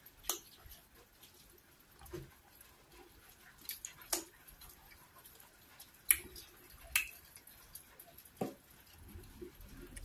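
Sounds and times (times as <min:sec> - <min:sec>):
wet eating smacks and clicks: 0:03.6 - 0:04.4, 0:06.0 - 0:07.8.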